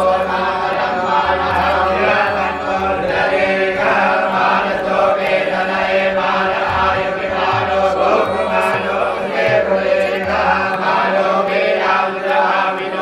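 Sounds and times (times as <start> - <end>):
group chanting in unison: 0.0 - 13.0.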